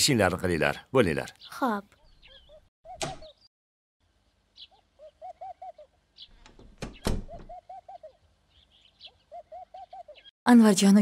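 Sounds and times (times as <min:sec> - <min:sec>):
faint bird chirps: 0:01.3 - 0:03.5
bird cooing: 0:04.6 - 0:06.0, 0:07.2 - 0:10.3.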